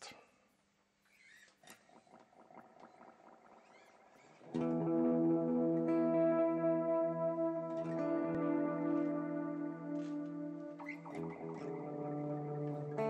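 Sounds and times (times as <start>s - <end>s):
electric guitar picked notes: 2.0s - 13.0s
electric guitar sustained chord: 4.5s - 13.0s.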